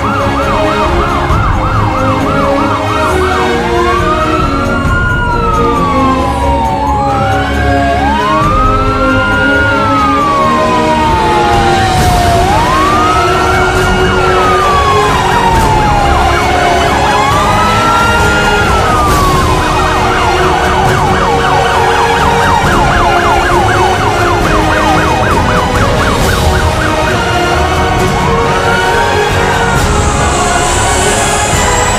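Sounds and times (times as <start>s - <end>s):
police car siren wailing: 0.0s - 31.9s.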